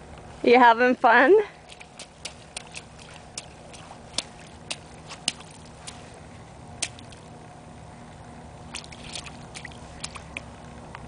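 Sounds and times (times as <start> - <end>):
feet splashing in mud puddle: 1.6 - 6.2, 6.8 - 7.3, 8.7 - 10.5.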